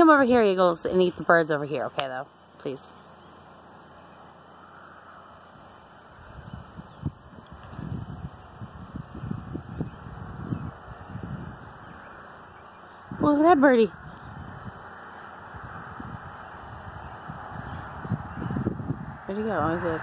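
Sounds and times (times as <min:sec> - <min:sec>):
faint outdoor hush: 0:00.0 - 0:20.0
rumbling and bumping on microphone: 0:06.4 - 0:11.7.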